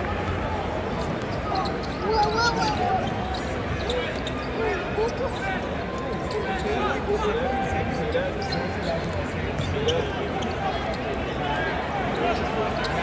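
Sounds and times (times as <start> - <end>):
crowd chatter: 0.0 - 13.0
sneaker squeaks: 1.0 - 7.0, 7.9 - 11.4, 12.0 - 13.0.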